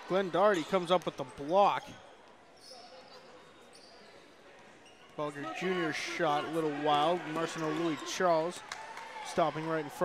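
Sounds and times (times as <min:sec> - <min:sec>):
sneaker squeaks: 0:00.4 - 0:05.5.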